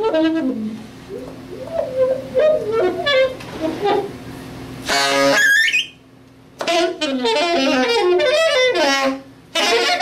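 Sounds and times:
solo saxophone improvising: 0.0s - 4.2s, 4.8s - 6.0s, 6.6s - 10.0s.

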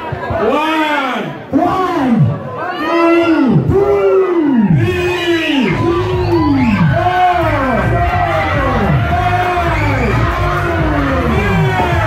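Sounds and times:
loud drawn-out shouts: 0.0s - 12.0s.

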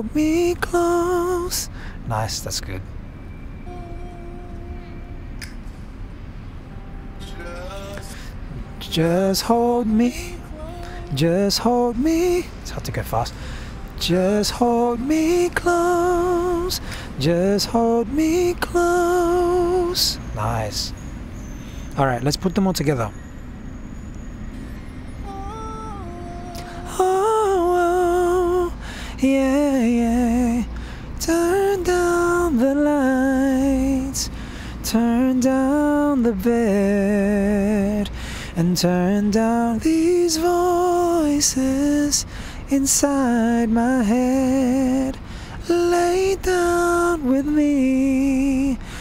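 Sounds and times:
low background hum: 0.0s - 49.0s
low outdoor rumble: 0.0s - 49.0s
man singing falsetto note: 3.6s - 5.2s, 7.2s - 8.2s.

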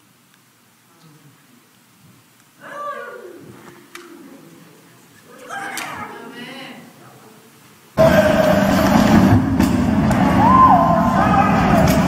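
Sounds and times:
dense din of assembly hall: 0.9s - 12.0s.

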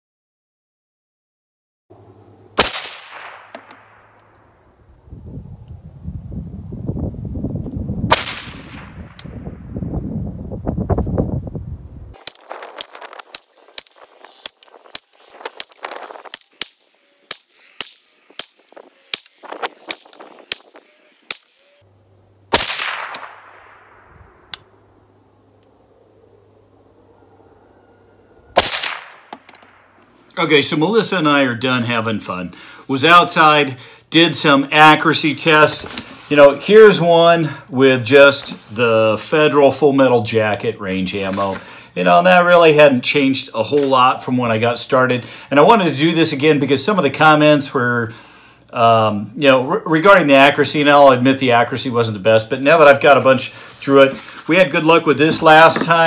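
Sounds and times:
suppressed rifle shots: 2.6s - 4.3s, 8.1s - 9.2s, 22.5s - 24.1s, 28.6s - 29.8s.

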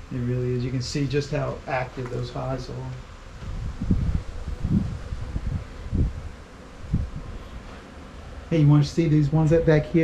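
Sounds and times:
wind buffeting microphone: 1.5s - 10.0s.

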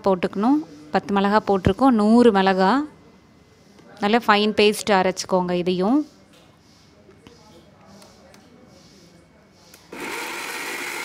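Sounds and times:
mixer grinder running: 9.9s - 11.0s.

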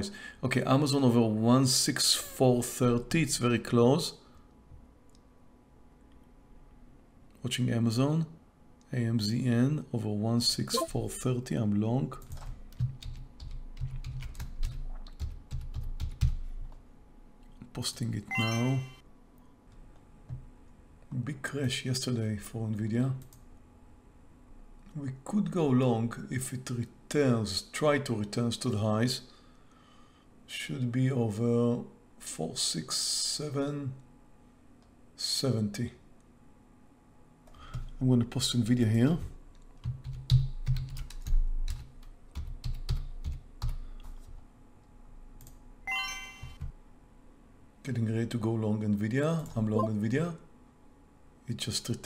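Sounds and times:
man talking: 0.0s - 4.2s, 8.9s - 12.2s, 17.6s - 19.0s, 24.9s - 29.2s, 38.0s - 39.3s, 47.8s - 50.4s, 51.5s - 52.0s
computer keyboard typing: 12.2s - 16.5s, 39.8s - 43.8s
short electronic chime: 18.3s - 19.0s, 45.9s - 46.6s.

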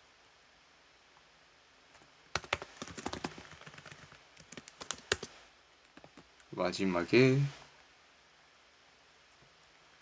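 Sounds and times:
typing on computer keyboard: 2.3s - 5.3s.

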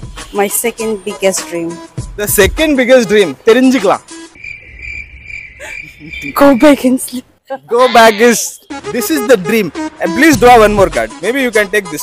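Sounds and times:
background music: 0.0s - 4.4s, 7.6s - 12.0s
crickets chirping: 4.4s - 8.3s.

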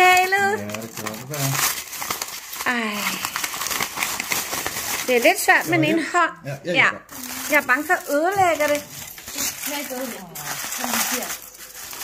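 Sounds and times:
aluminium foil crinkling: 0.0s - 6.1s, 7.1s - 12.0s.

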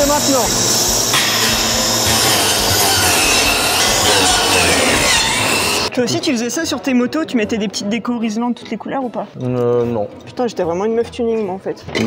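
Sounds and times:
cutting disc grinding into box: 0.5s - 5.9s.

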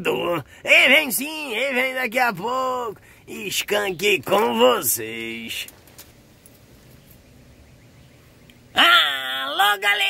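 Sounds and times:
faint steady hiss: 0.0s - 9.8s.

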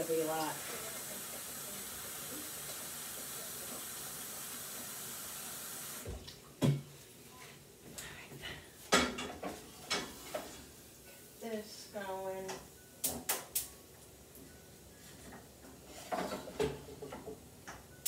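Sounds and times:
kitchen tap running into sink: 0.0s - 6.2s
kitchenware knocking and clattering: 6.6s - 6.9s, 8.9s - 10.6s, 15.7s - 17.9s.

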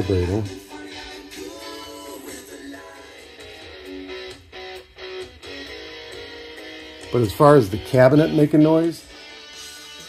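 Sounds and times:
guitar music through speaker panel: 0.0s - 10.0s.

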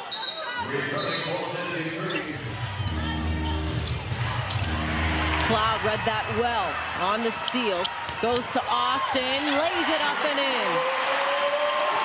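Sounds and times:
crowd noise: 0.0s - 12.0s.

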